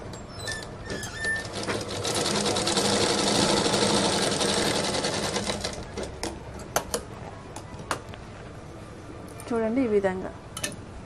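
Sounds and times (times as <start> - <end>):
sewing machine stitching: 0.6 - 6.1.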